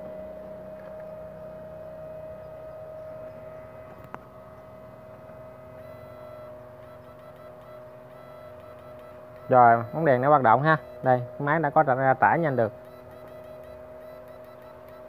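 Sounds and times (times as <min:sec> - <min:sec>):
inverter electrical hum and whine: 0:00.0 - 0:15.0.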